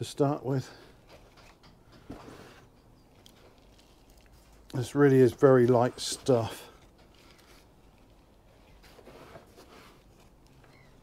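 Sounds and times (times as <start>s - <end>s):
compost rustling as it is spread: 3.3s - 10.4s.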